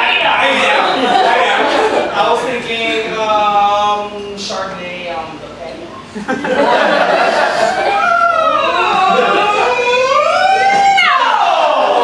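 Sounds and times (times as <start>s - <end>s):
voices wordless siren-like singing: 8.0s - 12.0s.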